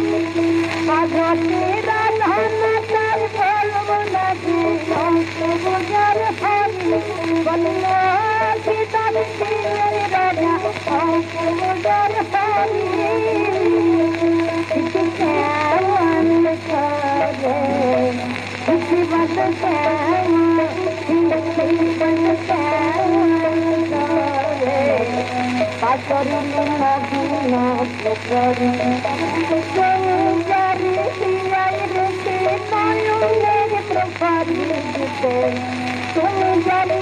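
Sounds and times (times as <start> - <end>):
person singing ornamented melody: 0.0 - 37.0.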